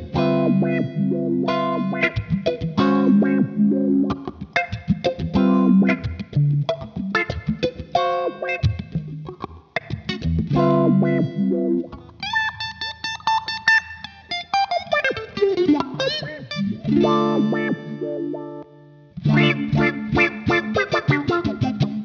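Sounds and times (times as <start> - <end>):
electric guitar through filter pedal: 0.0 - 22.0.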